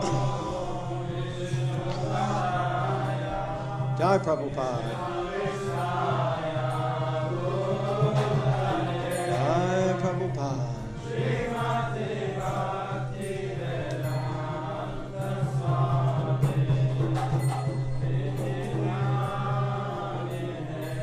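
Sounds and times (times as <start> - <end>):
voices chanting prayers: 0.0 - 21.0.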